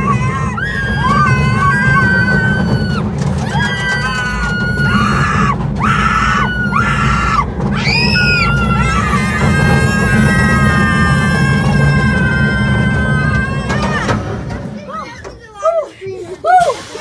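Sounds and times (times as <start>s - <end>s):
riders screaming: 0.0s - 14.3s
roller coaster low rumble: 0.0s - 17.0s.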